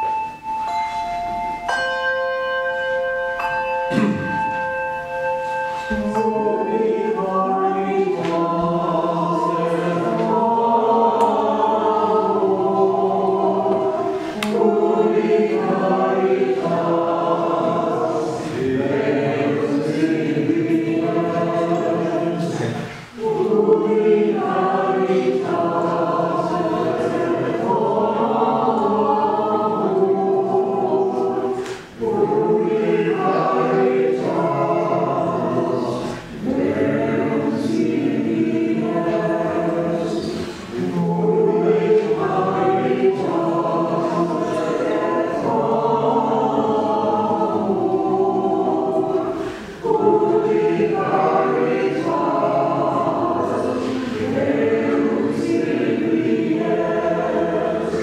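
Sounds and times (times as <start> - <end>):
choir singing a hymn: 0.0 - 1.7, 3.1 - 58.0.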